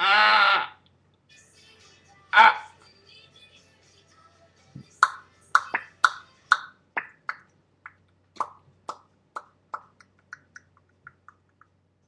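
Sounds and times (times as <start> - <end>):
lip mouth pops: 5.0 - 11.8.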